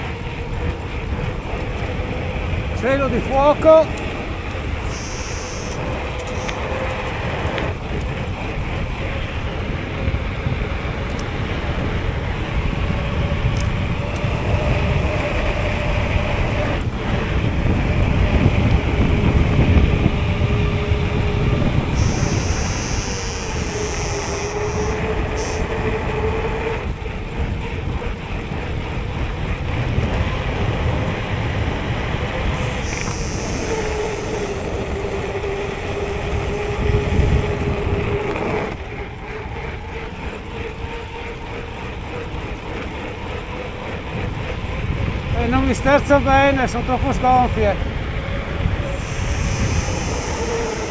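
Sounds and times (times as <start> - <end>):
bike tyres humming on tarmac: 0.0 - 50.9
wind rushing over microphone: 0.0 - 50.9.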